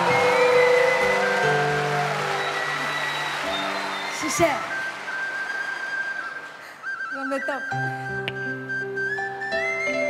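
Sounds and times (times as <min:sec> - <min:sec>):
high whistled note: 0:00.0 - 0:09.7
short wavering whistle: 0:00.0 - 0:10.0.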